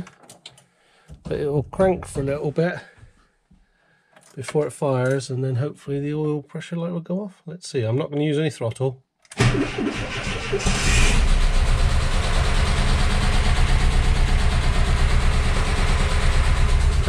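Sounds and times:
engine cranking and idling: 9.3s - 17.0s.

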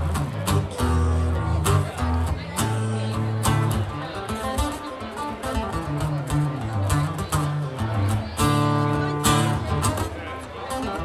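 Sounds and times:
acoustic guitar picked notes: 0.0s - 11.0s.

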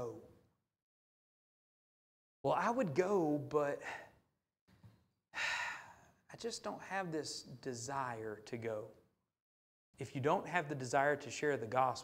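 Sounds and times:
faint breath in: 3.8s - 4.2s, 5.4s - 6.2s
man sighing: 5.4s - 6.1s.

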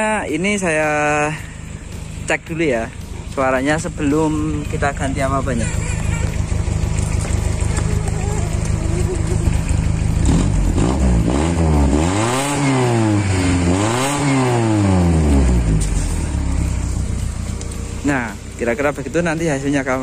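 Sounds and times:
car engine idling and revving: 0.0s - 20.0s.

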